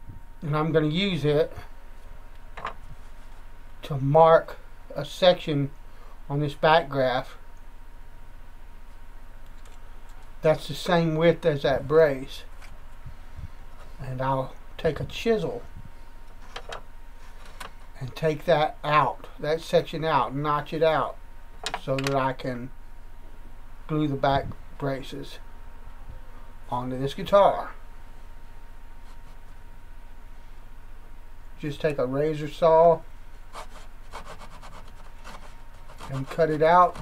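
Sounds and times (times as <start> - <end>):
low steady hum: 0.0 - 37.0
razor saw cutting wood: 33.6 - 37.0.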